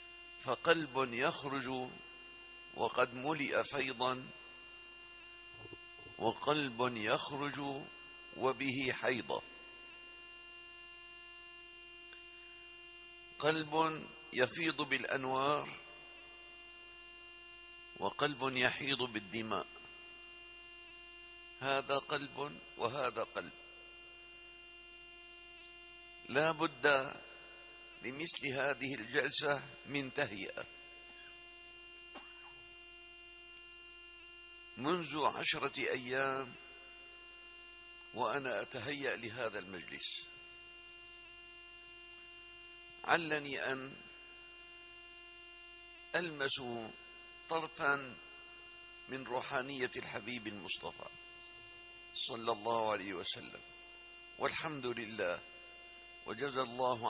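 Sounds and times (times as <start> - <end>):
faint electrical hum: 0.0 - 57.0.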